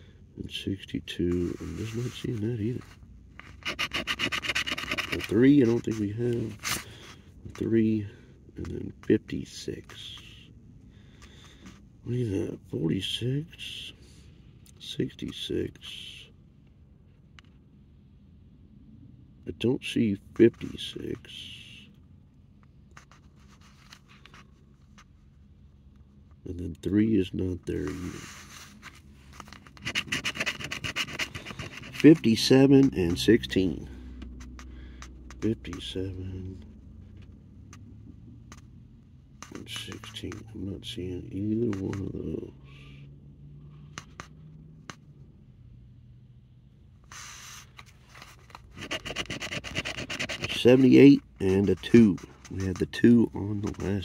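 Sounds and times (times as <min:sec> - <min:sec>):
plastic scratcher rubbing ticket: 0:01.3 - 0:06.9, 0:27.8 - 0:33.3, 0:39.4 - 0:40.4, 0:47.2 - 0:54.0.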